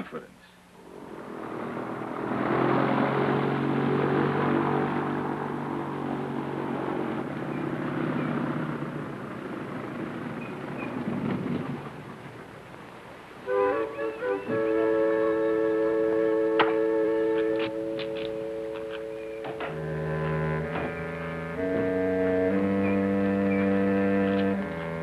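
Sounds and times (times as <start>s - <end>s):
airboat engine and propeller: 0.8s - 13.4s, 14.8s - 25.0s.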